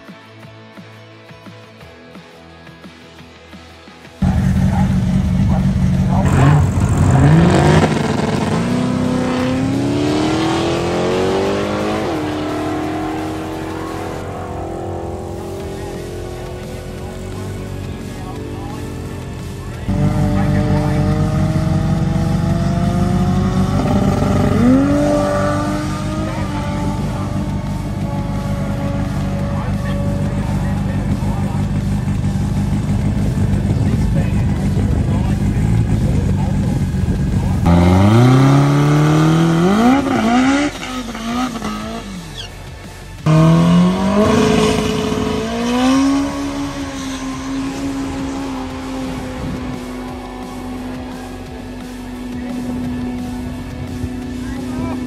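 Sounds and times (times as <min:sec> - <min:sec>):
drag racing car engine revving: 0:04.2 - 0:55.0.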